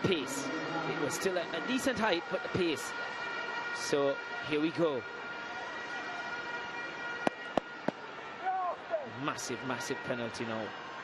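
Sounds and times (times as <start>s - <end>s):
high-pitched drone: 0.0s - 3.2s
stadium crowd: 0.0s - 11.0s.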